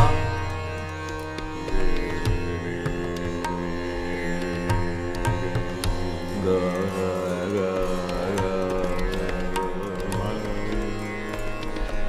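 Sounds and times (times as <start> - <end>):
harmonium: 0.0 - 12.0
tanpura drone: 0.0 - 12.0
man singing: 1.7 - 12.0.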